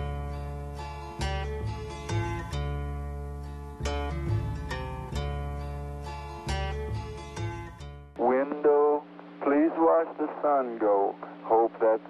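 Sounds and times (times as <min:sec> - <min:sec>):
acoustic guitar picking: 0:00.0 - 0:09.6
thin radio-like singing voice: 0:08.2 - 0:12.0.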